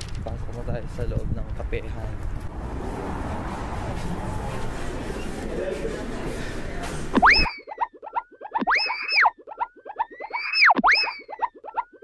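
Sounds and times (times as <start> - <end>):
cartoon boing sound effect: 7.2 - 12.0.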